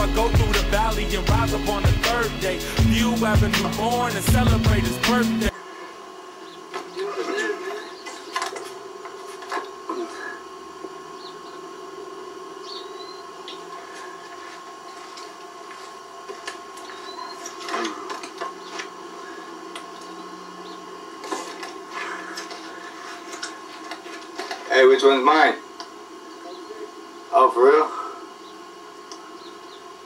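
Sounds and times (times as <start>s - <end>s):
steady hum with high tone: 0.0s - 30.0s.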